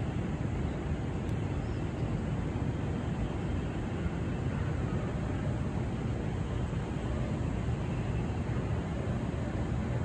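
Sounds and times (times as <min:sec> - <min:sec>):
low rumble of city ambience: 0:00.0 - 0:10.0.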